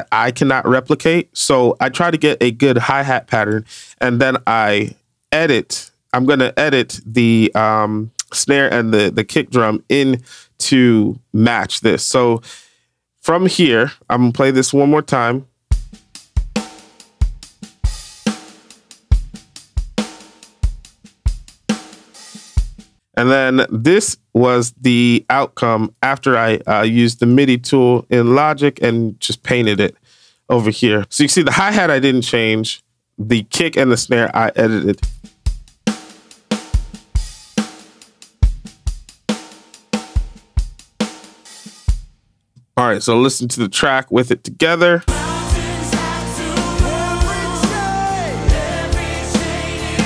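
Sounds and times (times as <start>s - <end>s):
hi-hat pattern: 15.7s - 23.0s, 35.0s - 42.2s, 45.1s - 50.0s.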